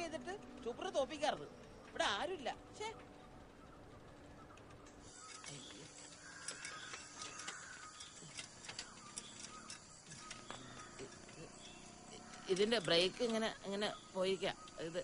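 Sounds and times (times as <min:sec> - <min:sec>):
quiet outdoor background: 0:00.0 - 0:15.0
bicycle chain clicks: 0:04.4 - 0:15.0.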